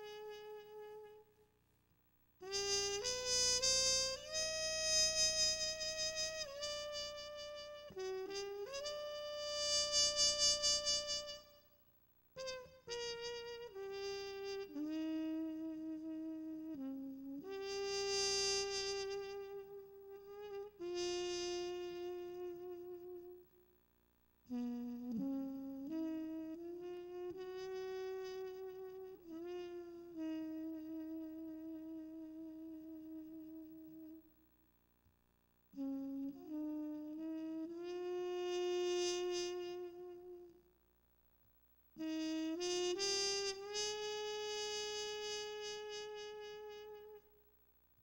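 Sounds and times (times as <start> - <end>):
trumpet long note with vibrato: 0.0 - 1.4, 2.4 - 11.8, 12.4 - 23.4, 24.5 - 34.2, 35.8 - 40.6, 42.0 - 47.4.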